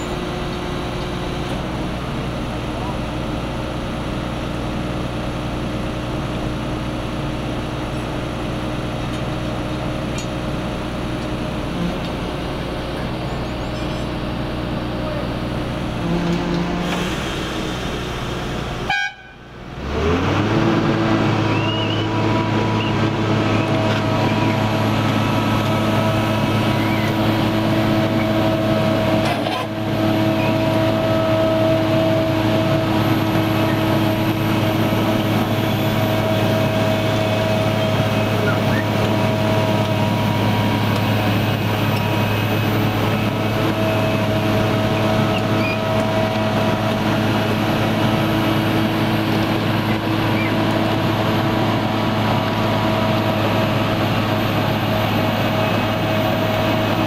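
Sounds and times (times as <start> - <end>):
machine engine humming: 0.0 - 57.0.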